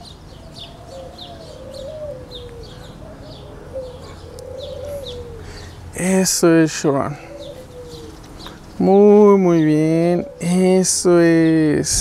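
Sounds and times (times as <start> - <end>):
dove cooing: 0.0 - 12.0
small birds chirping: 0.0 - 12.0.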